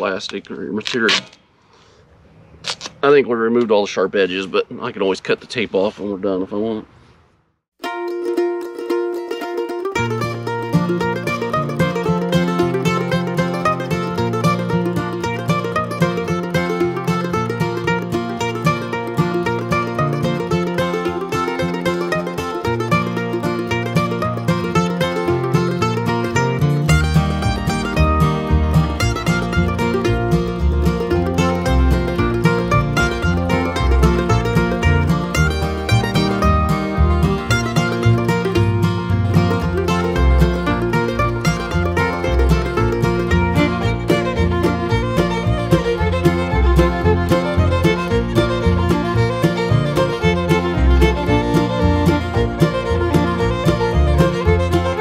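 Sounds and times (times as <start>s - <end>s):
bass line: 7.8s - 55.0s
mandolin-like melody: 7.8s - 55.0s.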